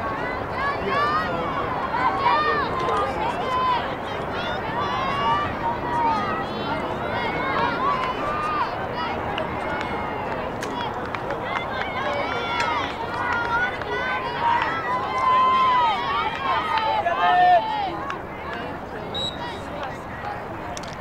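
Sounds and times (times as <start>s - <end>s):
women and girls shouting: 11.4s - 18.1s.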